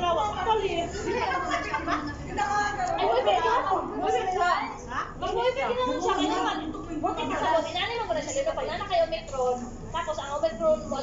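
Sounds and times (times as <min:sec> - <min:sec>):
women chatting: 0:00.0 - 0:11.0.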